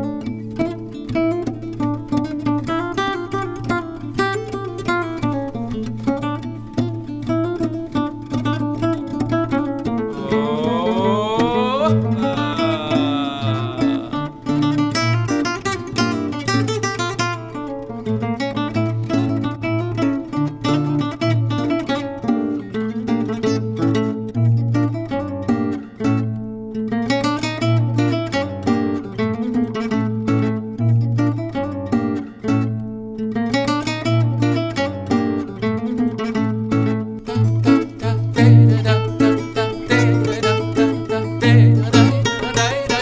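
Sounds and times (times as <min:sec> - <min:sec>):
classical guitars playing dance tune: 0:00.0 - 0:11.1, 0:11.9 - 0:43.0.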